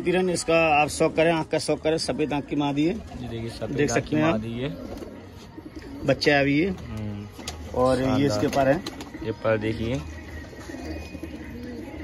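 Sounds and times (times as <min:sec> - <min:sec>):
pigeons cooing: 0:00.0 - 0:12.0
man's voice: 0:06.0 - 0:10.2.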